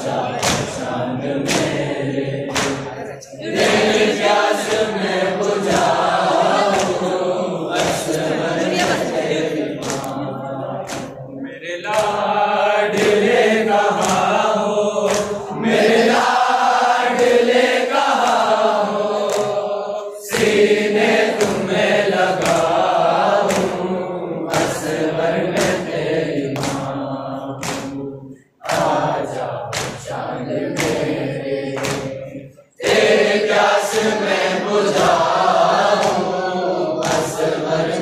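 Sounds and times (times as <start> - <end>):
men chanting in chorus: 0.0 - 38.0
rhythmic chest slaps: 0.0 - 38.0.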